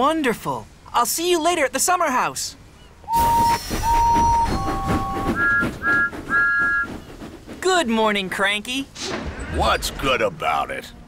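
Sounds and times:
steam engines puffing: 2.9 - 9.8
steam locomotive whistles: 3.0 - 7.3.

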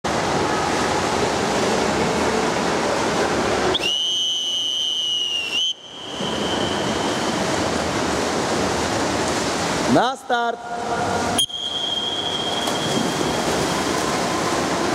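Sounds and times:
indoor pool water noise: 0.0 - 14.9
long whistle blast: 3.7 - 7.4, 11.4 - 13.5.

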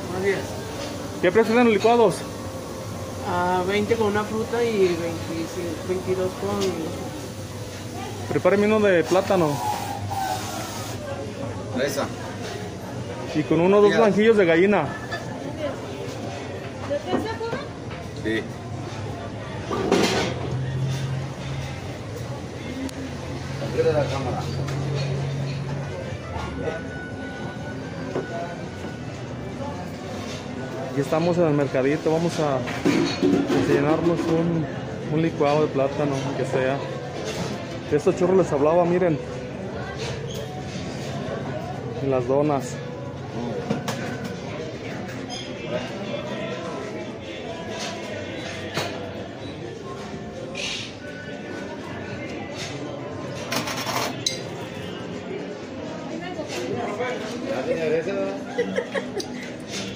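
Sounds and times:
faint voices: 0.0 - 59.9.

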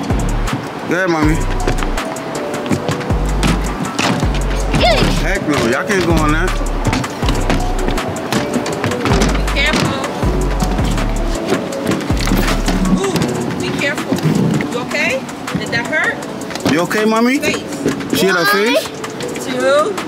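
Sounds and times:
background music with deep bass: 0.0 - 20.0
young children's voices: 4.5 - 5.4, 18.1 - 19.0.

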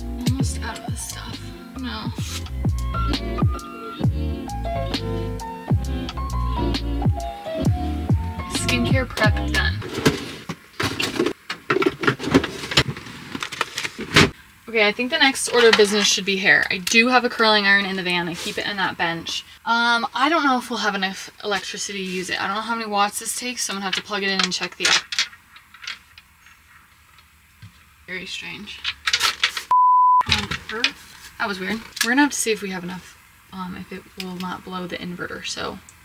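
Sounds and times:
drawer being searched: 8.5 - 14.4, 15.3 - 16.7, 28.7 - 32.2.

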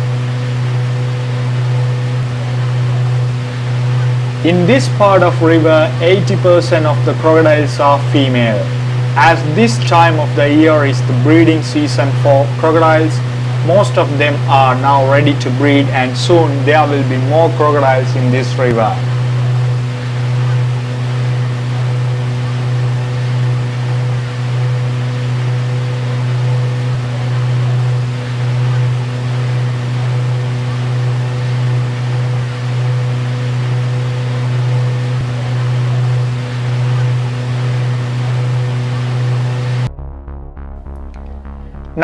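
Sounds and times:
boat engine humming: 0.0 - 42.0.

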